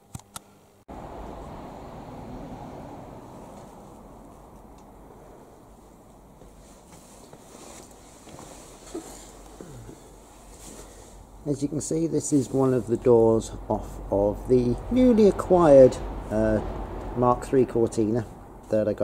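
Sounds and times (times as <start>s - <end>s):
low rumbling background noise: 0.9s - 19.0s.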